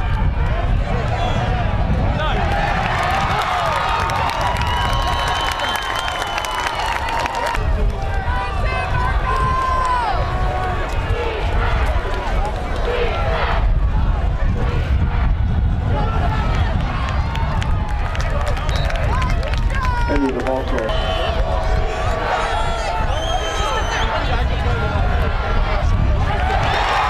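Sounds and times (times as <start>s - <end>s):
crowd talking and calling out: 0.0s - 5.8s, 7.1s - 27.0s.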